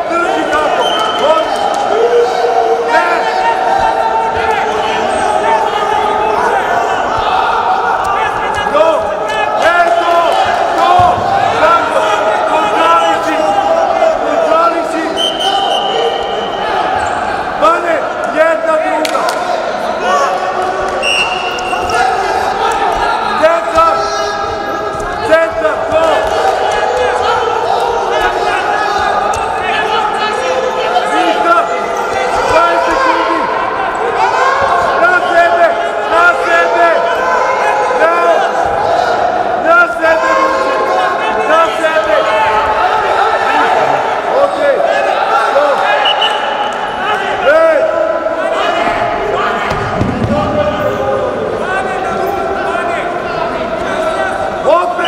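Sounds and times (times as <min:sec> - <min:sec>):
voices shouting: 0:00.0 - 0:55.0.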